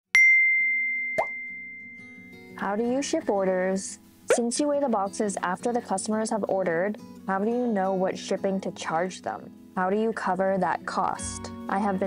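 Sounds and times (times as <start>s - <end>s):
bright chime: 0.2s - 2.6s
soft background music: 1.2s - 12.0s.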